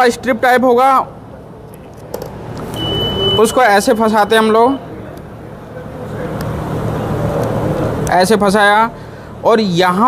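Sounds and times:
high electronic beep: 2.7 - 4.9.

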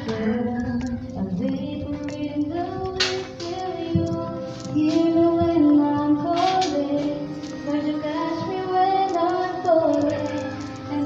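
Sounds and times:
high voice singing: 0.0 - 11.0
musical accompaniment: 0.0 - 11.0.

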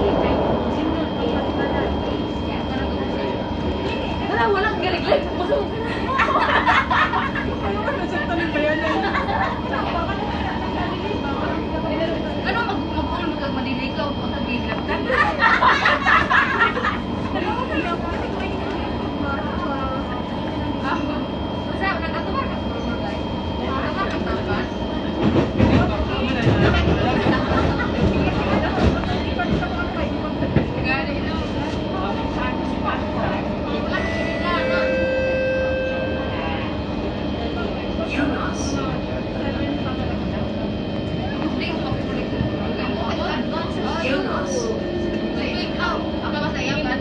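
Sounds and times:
people's voices: 0.0 - 47.0
train wheels rumbling on rails: 0.0 - 47.0.

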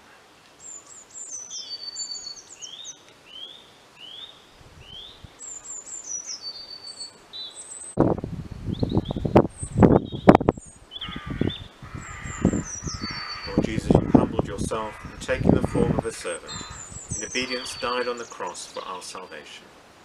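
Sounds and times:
songbirds singing: 0.0 - 19.6.

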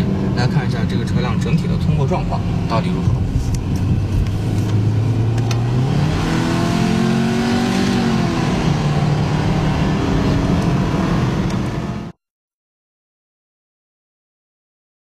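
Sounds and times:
car engine accelerating: 0.0 - 12.2
road and tyre noise: 0.0 - 12.2.

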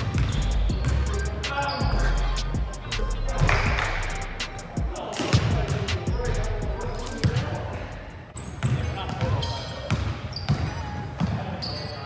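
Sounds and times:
basketballs bouncing on hardwood: 0.0 - 1.1, 8.5 - 11.4
players' voices: 0.0 - 12.0.

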